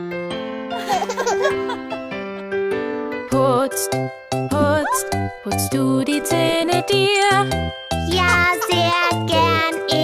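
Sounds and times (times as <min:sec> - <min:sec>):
instrumental children's song: 0:00.3 - 0:10.0
baby giggling: 0:00.8 - 0:02.1, 0:08.2 - 0:09.6.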